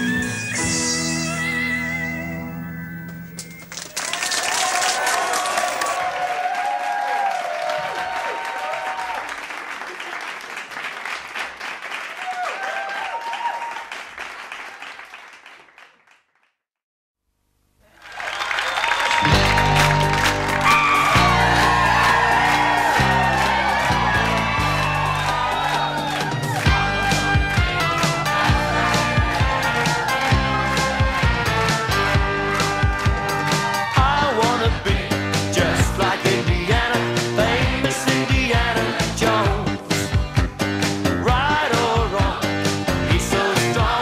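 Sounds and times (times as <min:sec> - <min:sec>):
audience applause and cheering: 0:03.3 - 0:16.4, 0:17.8 - 0:39.5
band music with bass beat: 0:19.2 - 0:44.0.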